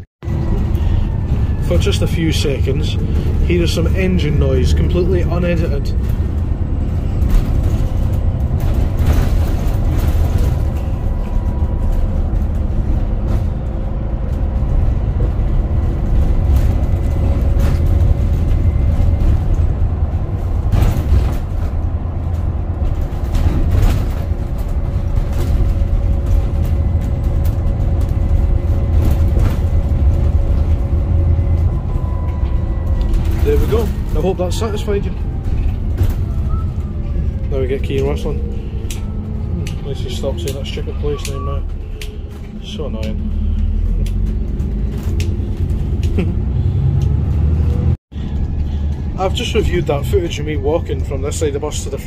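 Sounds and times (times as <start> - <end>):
bus engine rumbling: 0.0 - 52.0
faint engine whine: 0.2 - 52.0
knocks and rattles: 2.7 - 48.6.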